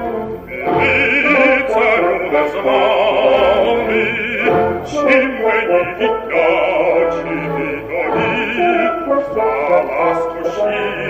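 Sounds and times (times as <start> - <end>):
operatic singing with orchestra: 0.0 - 11.0.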